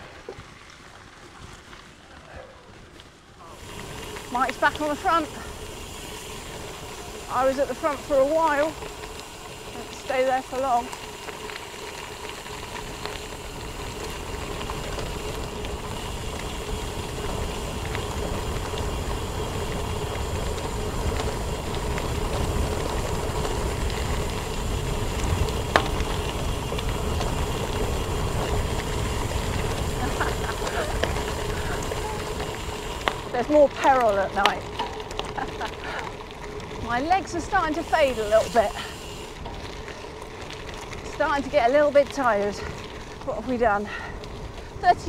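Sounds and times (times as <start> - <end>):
bike tyres rumbling on gravel: 0.0 - 45.0.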